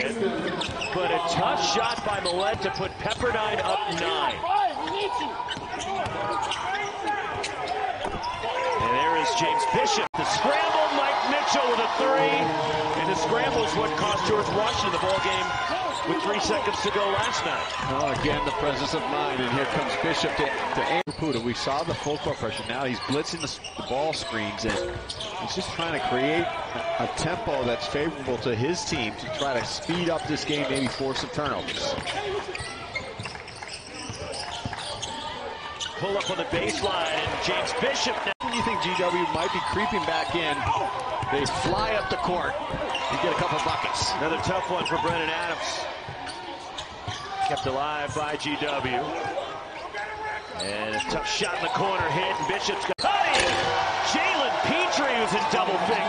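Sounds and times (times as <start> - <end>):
sneakers squeaking: 0.0 - 9.8, 12.7 - 18.9, 20.9 - 26.8, 29.0 - 37.8, 38.4 - 56.0
arena crowd murmur: 0.0 - 21.4, 34.1 - 56.0.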